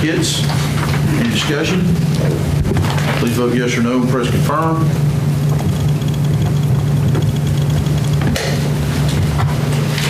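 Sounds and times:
loud low hum: 1.8 - 10.0
rapid high-pitched ticking: 5.4 - 8.3.

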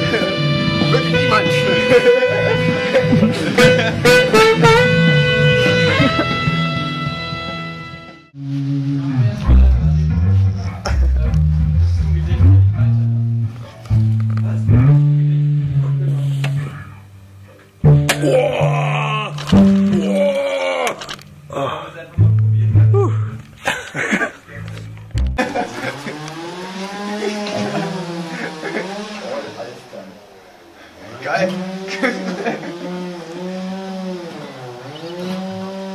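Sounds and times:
rock band jamming: 0.0 - 8.9, 17.8 - 21.6, 23.4 - 29.2
saxophone holding long notes: 0.0 - 10.6.

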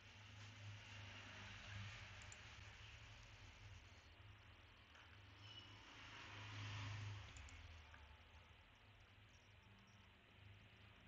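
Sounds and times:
computer mouse clicks: 7.3 - 8.0.

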